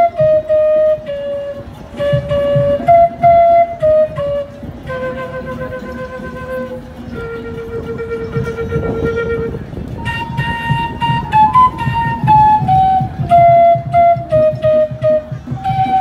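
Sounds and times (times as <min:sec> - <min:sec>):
flute melody: 0:00.0 - 0:16.0
low pulsing accompaniment: 0:00.0 - 0:16.0.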